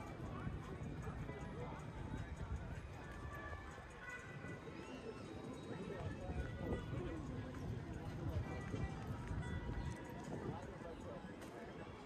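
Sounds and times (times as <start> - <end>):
chatter of passers-by: 0.0 - 12.0.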